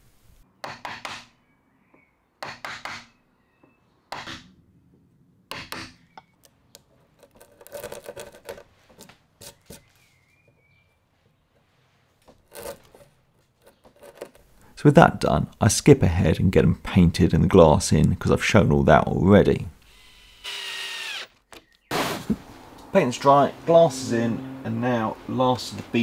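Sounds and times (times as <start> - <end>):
chisel cutting into wood: 5.5 - 6.4, 7.0 - 9.9, 12.4 - 14.5.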